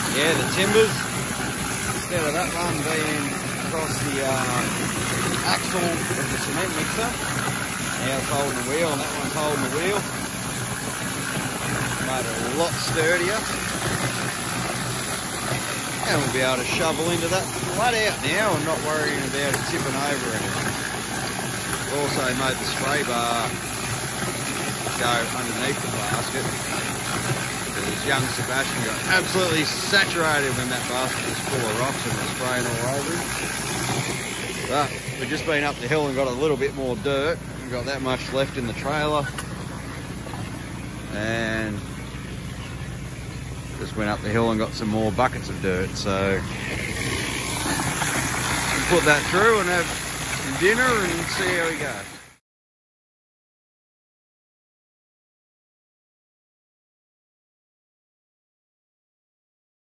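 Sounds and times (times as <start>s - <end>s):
engine drone: 0.0s - 52.4s
water jet spraying: 0.0s - 52.4s
water pouring out: 0.0s - 52.4s.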